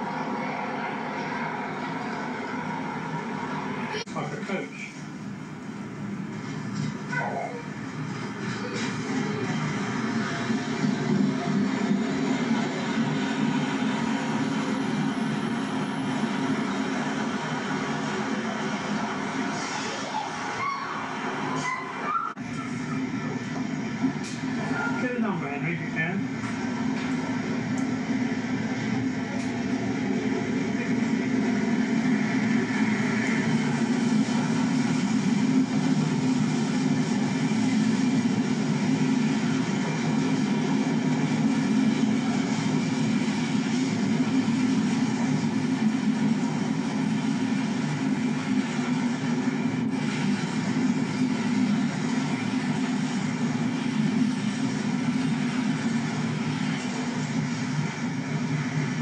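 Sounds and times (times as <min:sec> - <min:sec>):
locomotive engine drone: 0:00.0 - 0:59.0
wagons rumbling over rails: 0:00.0 - 0:59.0.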